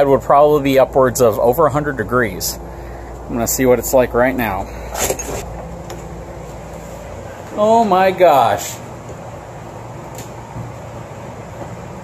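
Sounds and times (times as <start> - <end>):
air conditioner fan and compressor hum: 0.0 - 12.0.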